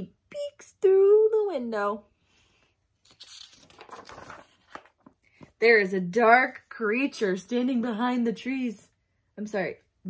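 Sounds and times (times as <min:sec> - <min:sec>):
paper page turning: 0:03.0 - 0:05.5.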